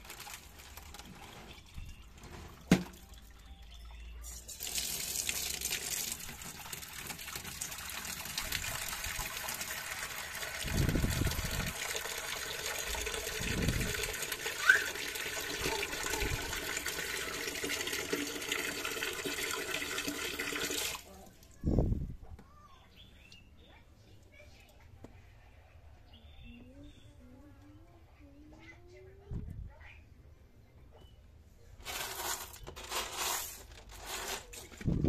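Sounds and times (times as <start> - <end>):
water pouring into plastic tub: 0.0 - 3.4, 4.6 - 21.1.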